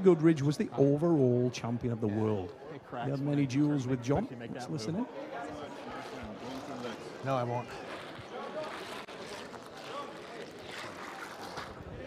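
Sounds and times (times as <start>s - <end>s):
low voices chattering: 0.0s - 12.0s.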